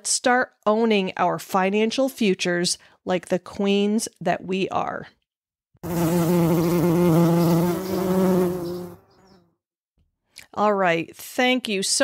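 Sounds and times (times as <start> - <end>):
bee buzzing: 5.8 - 9.5.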